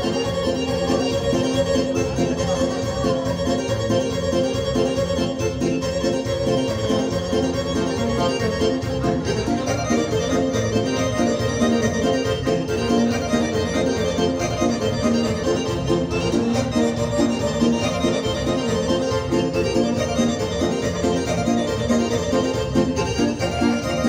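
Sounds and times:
folk dance music on keyboard: 0.0 - 24.0
violin: 0.0 - 24.0.

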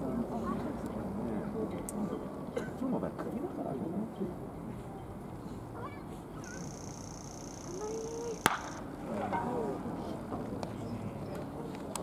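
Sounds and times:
wooden bat cracking ball: 8.4 - 9.5.

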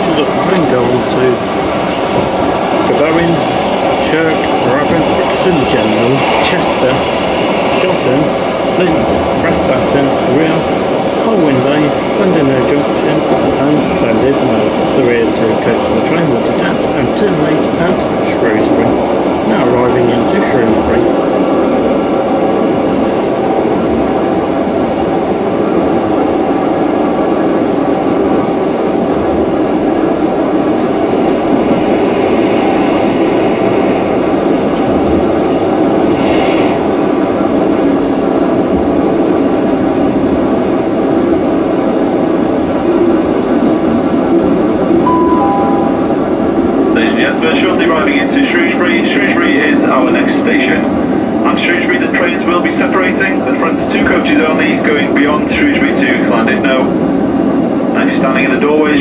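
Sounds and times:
train engine drone: 0.0 - 59.0
automated announcement over speakers: 7.7 - 18.9, 45.0 - 50.8
two-note falling chime: 45.0 - 46.3.

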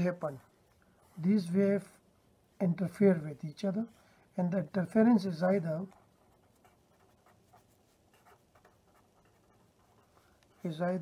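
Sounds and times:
pen scratching on paper: 5.0 - 10.8.

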